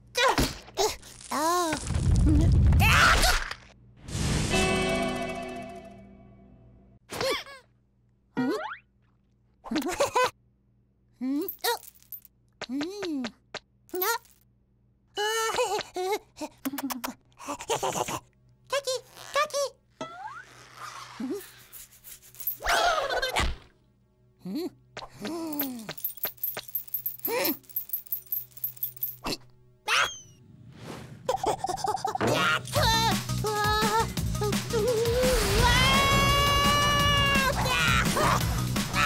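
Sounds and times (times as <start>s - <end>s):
cartoon chirp: 29.9s - 30.4s.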